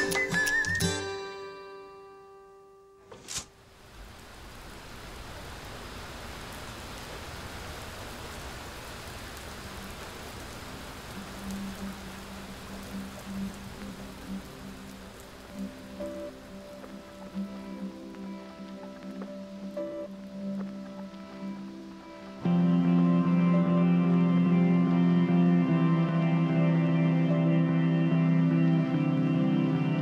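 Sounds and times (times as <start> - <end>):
rain falling: 0.0 - 0.9, 3.1 - 30.0
soft music with low notes: 0.0 - 3.4, 9.6 - 30.0.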